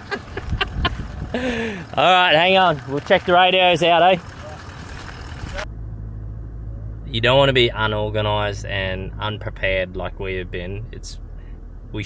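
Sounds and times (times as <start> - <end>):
road-side noise: 0.0 - 12.0
wind: 0.0 - 12.0
low hum in car cabin: 3.3 - 12.0.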